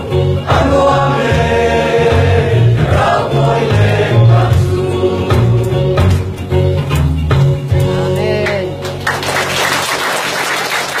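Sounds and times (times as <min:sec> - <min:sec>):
group song last chord: 0:00.0 - 0:06.4
audience applauding: 0:08.4 - 0:11.0.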